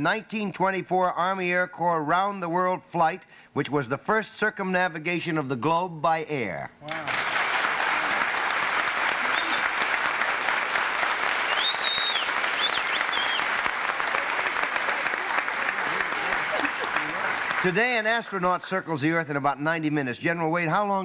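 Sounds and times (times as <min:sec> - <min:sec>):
audience applauding: 0:06.9 - 0:18.4.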